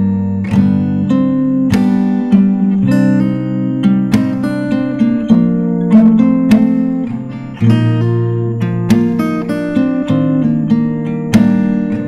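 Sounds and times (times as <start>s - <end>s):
fingerstyle acoustic guitar: 0.0s - 12.0s.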